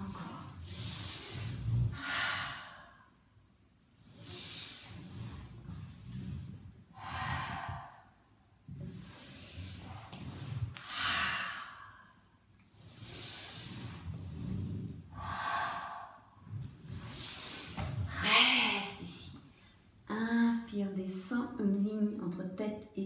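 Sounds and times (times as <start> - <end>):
woman breathing forcefully: 0.4 - 3.4, 4.0 - 18.9.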